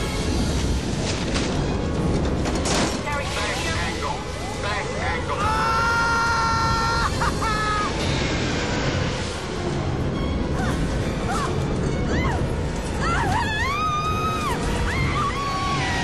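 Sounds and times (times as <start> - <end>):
loud continuous rumble: 0.0 - 16.0
music: 0.0 - 16.0.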